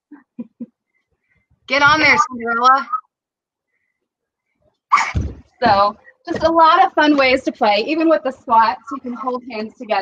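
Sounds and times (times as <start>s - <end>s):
woman speaking: 1.7s - 3.0s, 5.0s - 10.0s.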